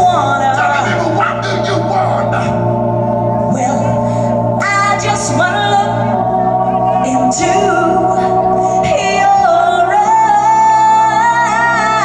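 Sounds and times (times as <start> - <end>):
live pop band playing: 0.0 - 12.0.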